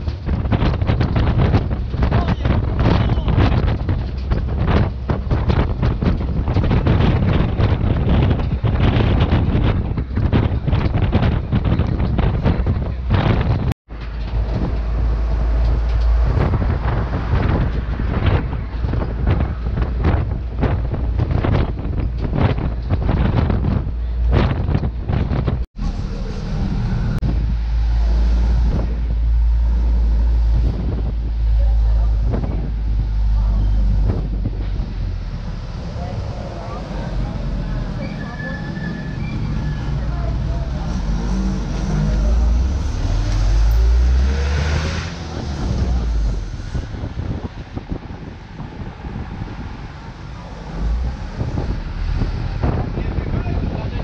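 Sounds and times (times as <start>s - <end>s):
road noise rumble: 0.0s - 54.0s
wind buffeting microphone: 0.0s - 54.0s.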